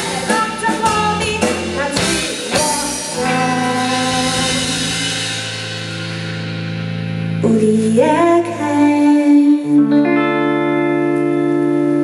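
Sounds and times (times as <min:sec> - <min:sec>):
rock band sustained chord: 0:00.0 - 0:08.9.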